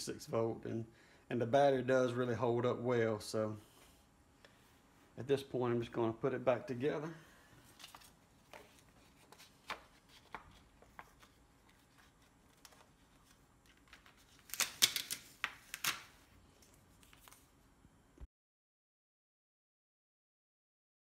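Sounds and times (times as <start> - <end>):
backing sheet crinkling: 7.6 - 17.6.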